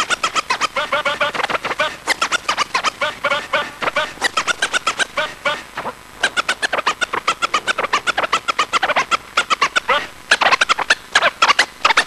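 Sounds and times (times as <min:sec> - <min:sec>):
record scratching on turntable: 0:00.0 - 0:12.0.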